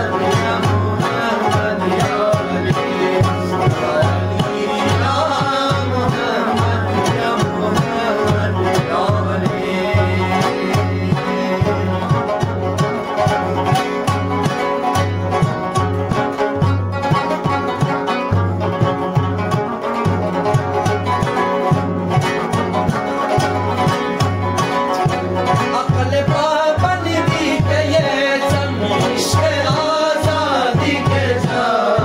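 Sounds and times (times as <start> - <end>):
person singing: 0.0 - 12.5, 25.5 - 32.0
frame drum beat: 0.0 - 32.0
plucked lute melody: 0.0 - 32.0.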